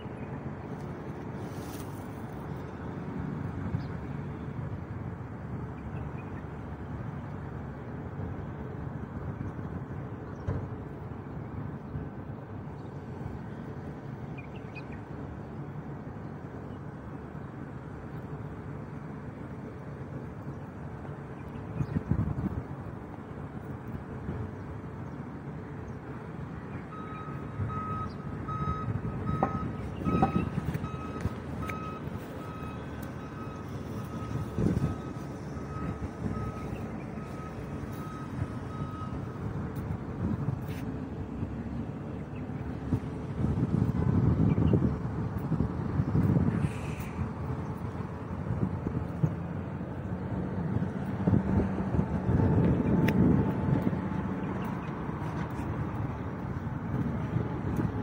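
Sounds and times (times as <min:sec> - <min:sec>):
low rumble of road traffic: 0:00.0 - 0:58.0
vehicle reversing alarm beeping: 0:26.8 - 0:40.4.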